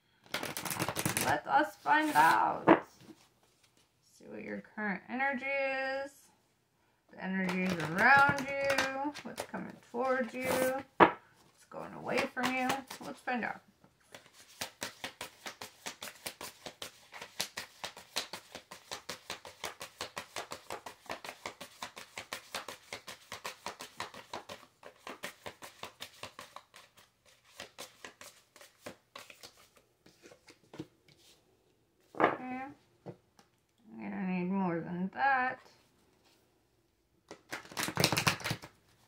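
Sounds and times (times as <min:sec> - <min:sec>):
cards being shuffled: 0:00.3 - 0:03.8, 0:07.4 - 0:11.2, 0:12.1 - 0:13.3, 0:14.0 - 0:31.4, 0:37.3 - 0:39.0.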